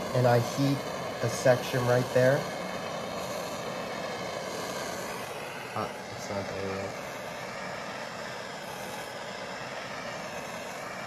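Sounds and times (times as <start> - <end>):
propane torch hissing: 0.0 - 11.0.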